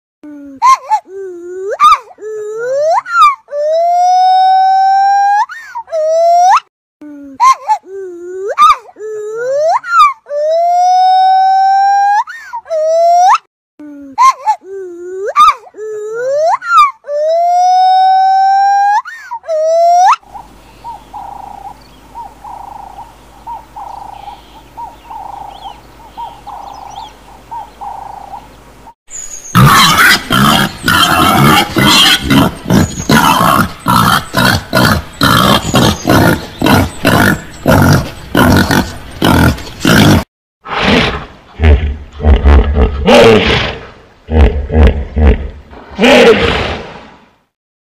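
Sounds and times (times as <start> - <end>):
monkey calls: 1.7 - 6.6, 7.4 - 13.4, 15.2 - 28.5, 29.5 - 39.5
faint bird chirps: 20.2 - 29.7
peccaries grunting: 29.6 - 46.8.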